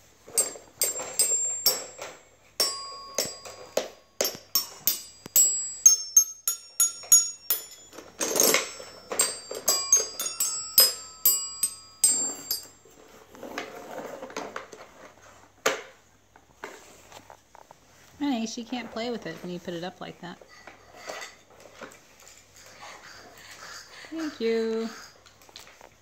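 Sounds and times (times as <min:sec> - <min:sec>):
toy xylophone notes: 0:00.4 - 0:12.8.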